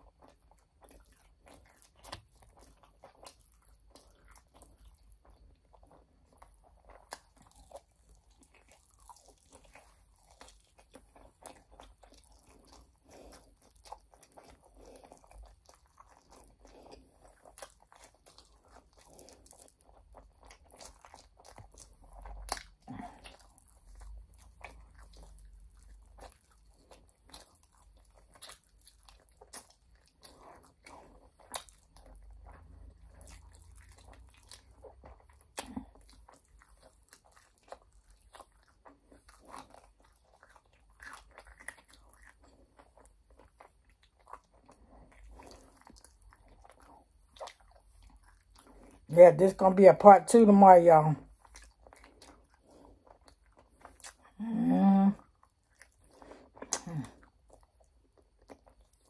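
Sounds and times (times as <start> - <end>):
chewing and biting: 0.0 - 49.1, 51.2 - 54.5, 55.2 - 59.0.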